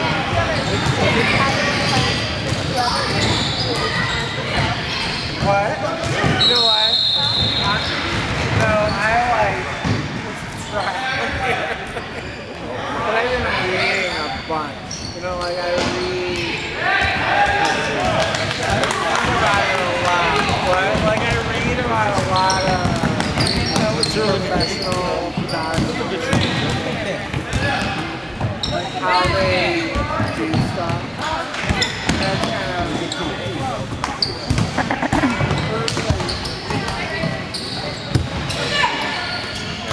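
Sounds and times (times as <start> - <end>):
sneakers squeaking: 0.2 - 17.2, 20.2 - 39.9.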